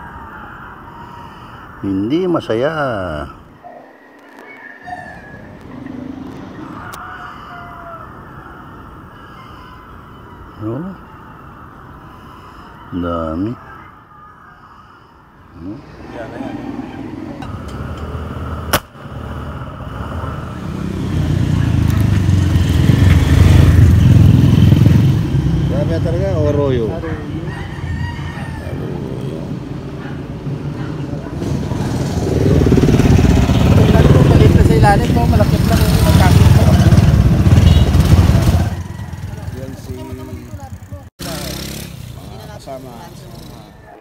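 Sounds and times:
rumble of passing vehicles: 0.0s - 9.3s, 15.4s - 44.0s
sharp gunshot: 18.7s - 19.0s.

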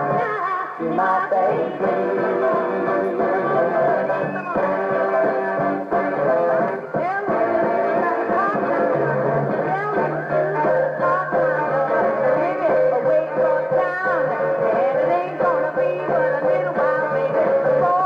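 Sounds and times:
woman singing: 0.0s - 5.7s, 6.9s - 18.0s
rhythm and blues band music: 0.0s - 18.0s.

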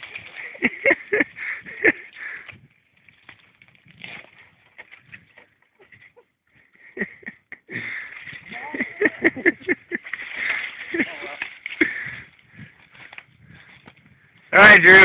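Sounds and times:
people laughing: 0.4s - 2.2s, 5.8s - 12.0s.

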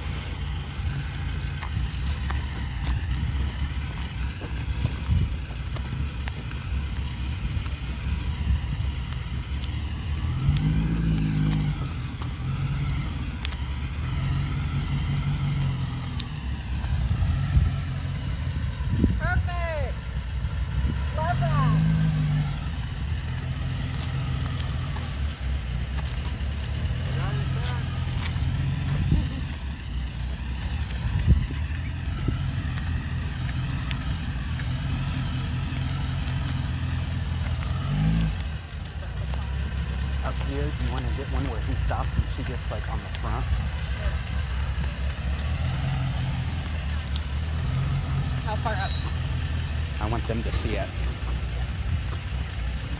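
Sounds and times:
car engine running: 0.0s - 52.9s.

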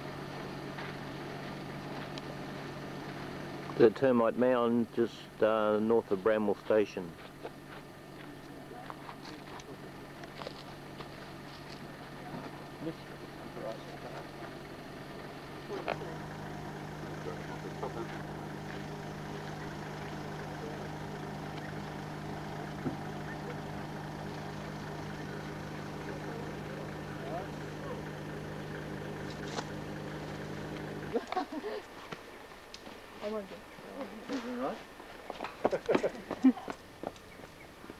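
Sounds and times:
vehicle engine idling: 0.0s - 31.6s.

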